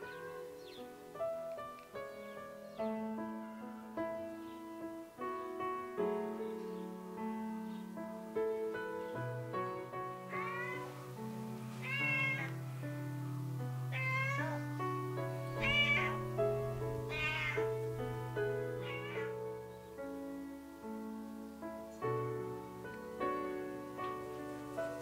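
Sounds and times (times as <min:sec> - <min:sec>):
cat meowing: 0:00.0 - 0:00.7, 0:09.8 - 0:11.1, 0:11.8 - 0:12.7, 0:13.9 - 0:19.5
piano music: 0:00.0 - 0:25.0.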